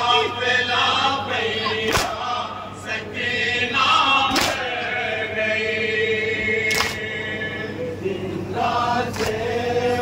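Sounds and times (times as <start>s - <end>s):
men chanting in chorus: 0.0s - 10.0s.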